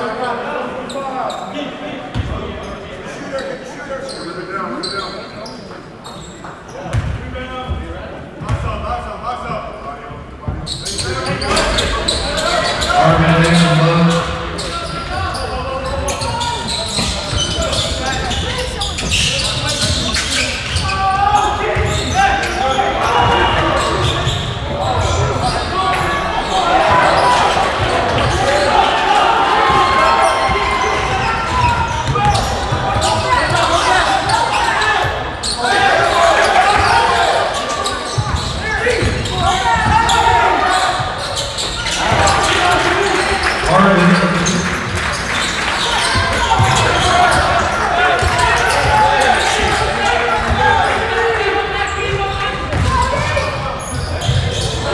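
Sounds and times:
spectators talking and shouting: 10.2s - 54.9s.

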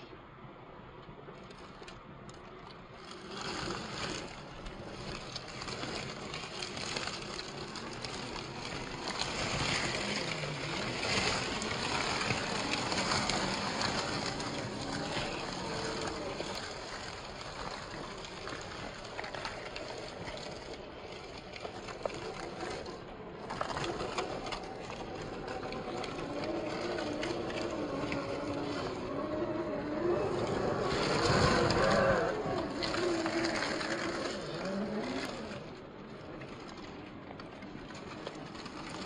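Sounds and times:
crunching of dry leaves: 3.1s - 20.8s, 21.4s - 35.7s.

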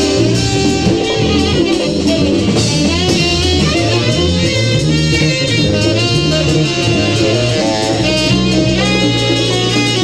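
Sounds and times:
drums: 0.0s - 10.0s
electric bass: 0.0s - 10.0s
percussion: 0.0s - 10.0s
saxophones: 0.0s - 10.0s.

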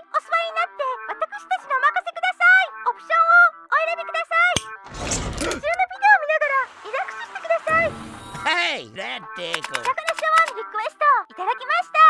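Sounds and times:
high cartoon voice speaking: 8.9s - 12.0s.

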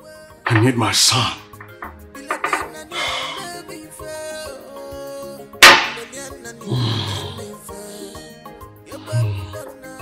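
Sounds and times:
background music: 0.0s - 10.0s
glass set down on wooden counter: 1.5s - 2.8s.

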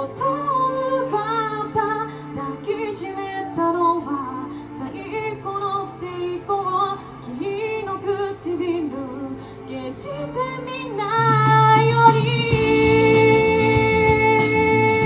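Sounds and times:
person singing: 0.0s - 15.0s
bass guitar: 9.9s - 15.0s
drums: 11.0s - 15.0s.

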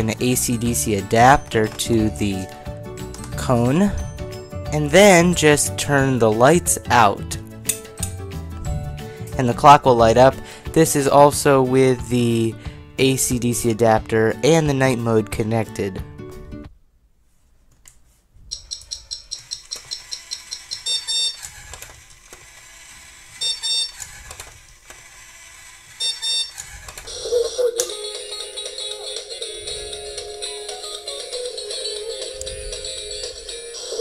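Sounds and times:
music playing: 0.0s - 16.7s, 27.1s - 34.0s
toy alarm clock beeping: 18.5s - 21.7s, 22.6s - 24.3s, 25.1s - 34.0s.

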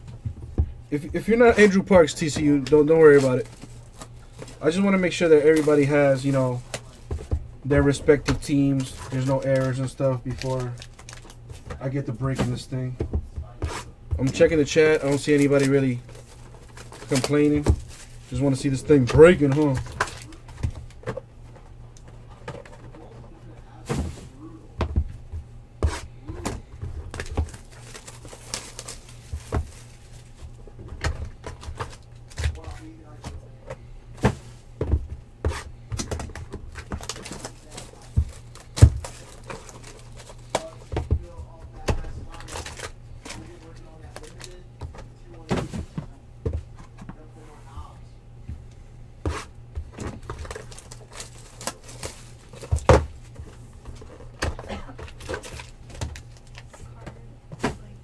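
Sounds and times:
low steady hum: 0.0s - 58.0s
cardboard boxes knocking on table: 24.8s - 27.6s, 34.2s - 37.2s.

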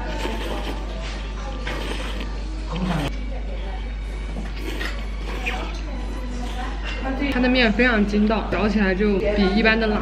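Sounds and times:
noodle slurping: 0.0s - 3.1s, 4.5s - 5.7s.

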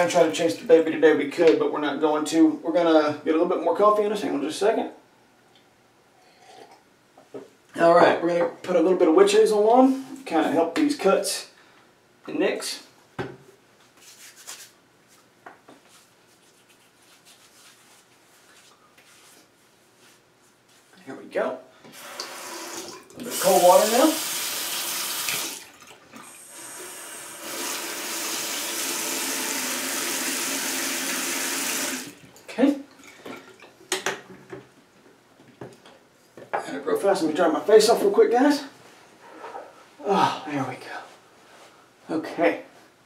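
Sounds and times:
faucet running into sink: 22.0s - 32.2s.

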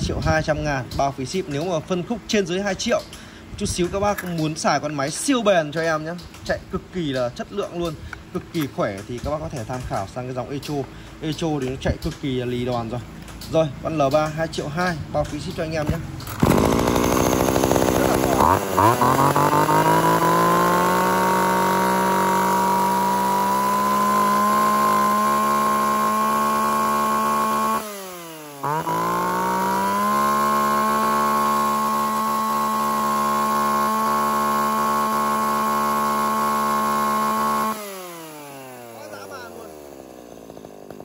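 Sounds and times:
chainsaw engine revving high: 15.8s - 41.0s.

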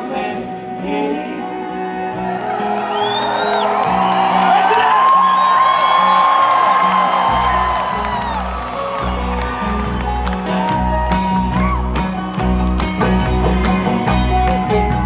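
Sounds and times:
live acoustic band: 0.0s - 15.0s
crowd cheering and whooping: 1.4s - 14.6s
whistles: 2.9s - 3.8s.

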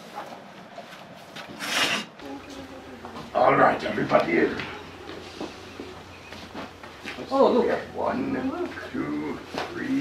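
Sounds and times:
faint background noise: 0.0s - 10.0s
short loud hiss: 1.6s - 2.1s.

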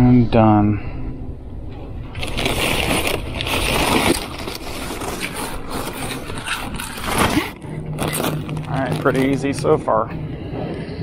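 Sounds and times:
plastic wrap crinkling: 2.2s - 9.9s.

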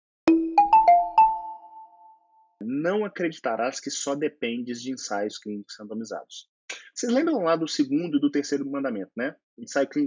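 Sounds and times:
logo jingle of struck notes: 0.3s - 1.9s.

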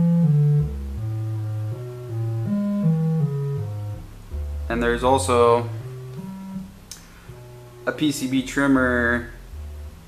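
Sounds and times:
synthesizer notes stepping in pitch: 0.0s - 10.0s.

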